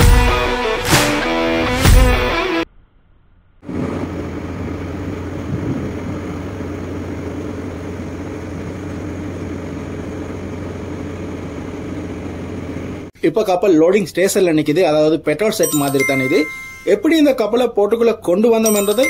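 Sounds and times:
low engine drone: 2.7s - 13.1s
wind: 3.5s - 13.1s.

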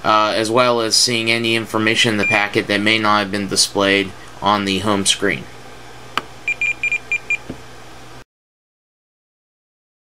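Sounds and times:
short high beeps: 6.5s - 7.4s.

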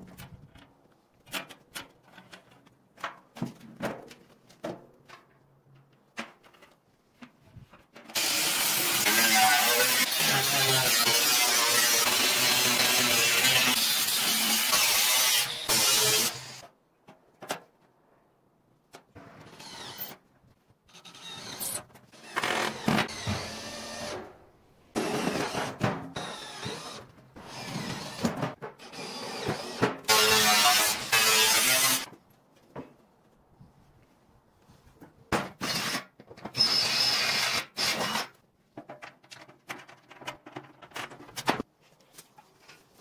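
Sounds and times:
angle grinder cutting metal: 8.2s - 16.6s, 30.1s - 32.1s.

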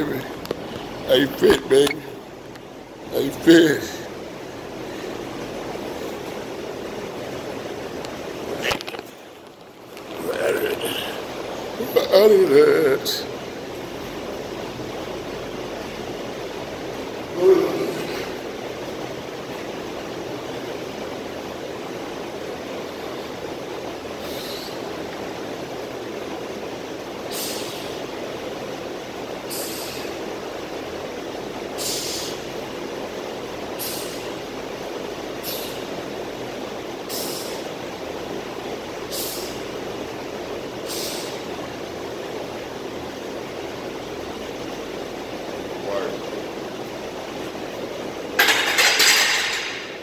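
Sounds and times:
steady rushing background noise: 0.0s - 50.0s.

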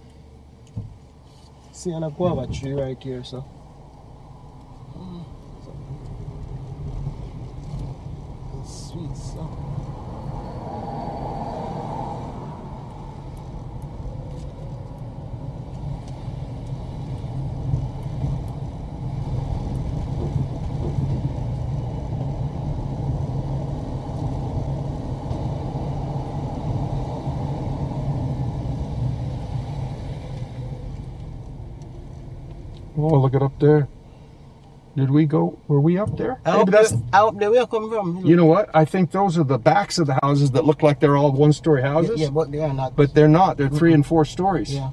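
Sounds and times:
car driving slowly: 0.0s - 44.9s.

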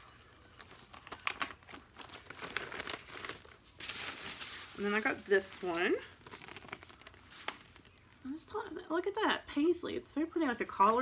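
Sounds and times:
paper bags crinkling: 0.5s - 8.3s.

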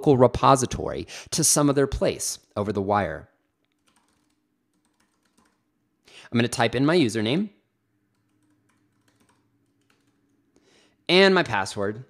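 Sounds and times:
keystrokes on computer keyboard: 3.6s - 5.6s, 8.1s - 10.4s.

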